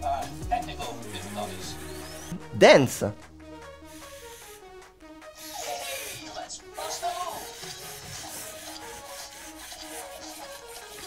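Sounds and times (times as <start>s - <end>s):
toy robot servo motors whirring: 5.4s - 11.0s.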